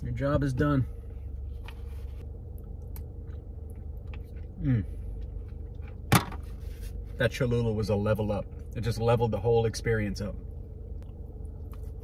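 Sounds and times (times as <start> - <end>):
low steady hum: 0.0 - 12.0
person chewing food: 2.5 - 6.1, 11.0 - 12.0
appreciative mm: 4.4 - 5.1.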